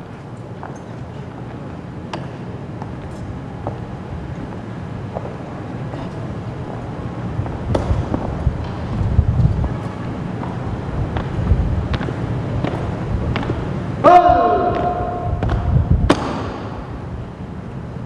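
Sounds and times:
steady low rumble: 0.0 - 18.0.

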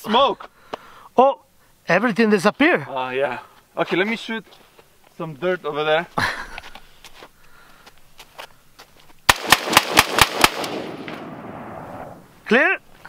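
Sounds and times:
gunshot echo: 9.3 - 12.2
rifle shots in quick succession: 9.3 - 12.2.

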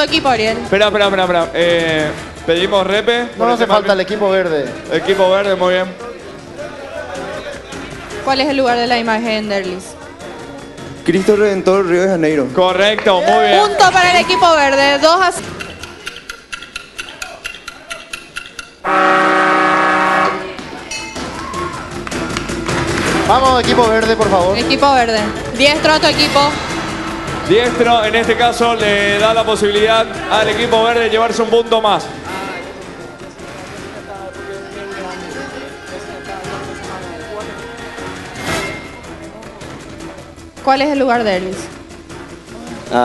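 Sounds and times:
background music: 0.0 - 43.0
low indistinct voices: 4.7 - 11.4, 26.5 - 40.6
rapid timer ticking: 15.3 - 18.9
buzzer horn blast: 18.8 - 20.6.

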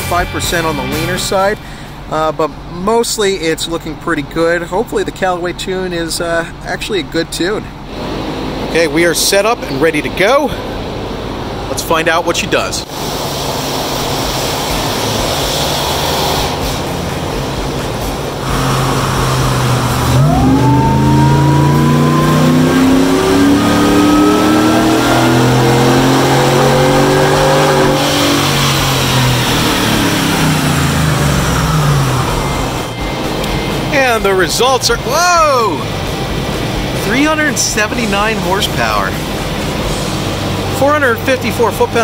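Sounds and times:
engine revving on dyno: 7.9 - 9.8, 12.9 - 33.9
supercharger whine: 13.5 - 42.0.

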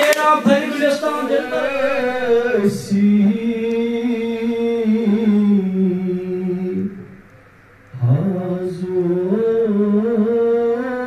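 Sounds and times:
man singing into microphone: 0.0 - 7.2, 8.0 - 11.0.

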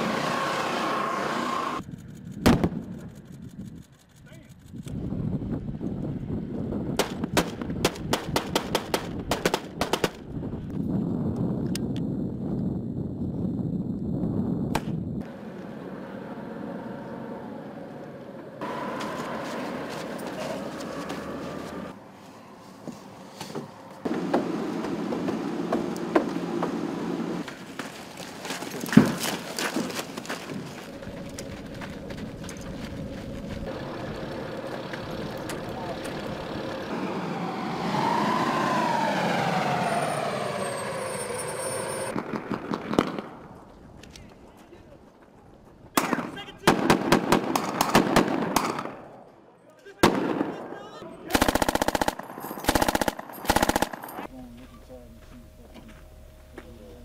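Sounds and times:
heavy truck engine: 0.0 - 1.9, 15.2 - 27.7, 30.4 - 42.1
machine-gun fire: 7.0 - 10.2, 46.0 - 49.0, 51.3 - 54.3.

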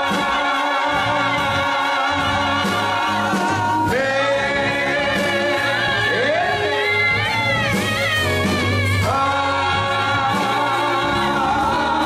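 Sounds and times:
group gospel singing: 0.0 - 12.0
keyboard accompaniment: 0.0 - 12.0
steady bass: 0.0 - 12.0.

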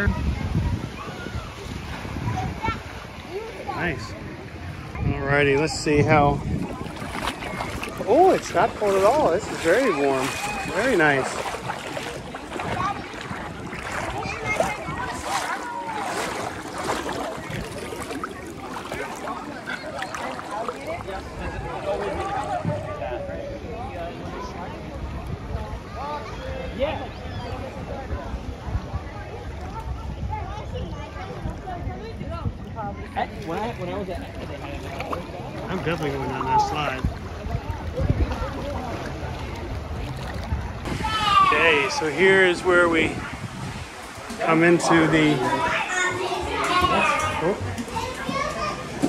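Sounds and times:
faint voices of swimmers: 0.0 - 49.0
water sloshing and lapping: 0.0 - 49.0.

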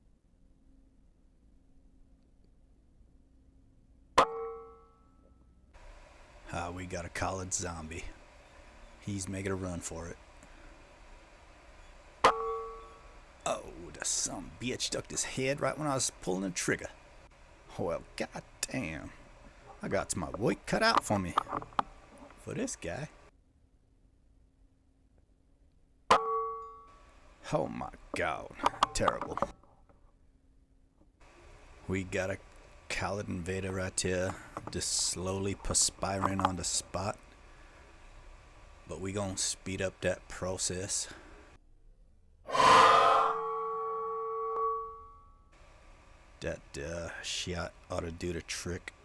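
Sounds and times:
short metallic ring: 4.2 - 5.6, 26.1 - 27.0, 42.5 - 45.5.

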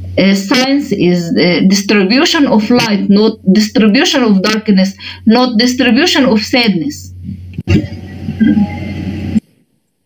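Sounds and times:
low electrical hum: 0.0 - 10.0
muffled mouth noise: 7.1 - 9.6.

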